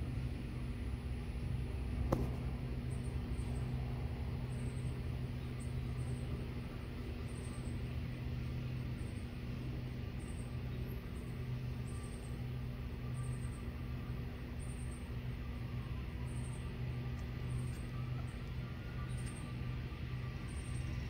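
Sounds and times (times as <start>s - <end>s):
low machine hum: 0.0s - 21.0s.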